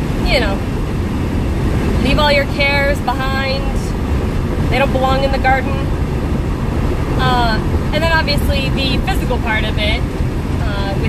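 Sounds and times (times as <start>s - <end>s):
vehicle road and engine rumble: 0.0s - 11.0s.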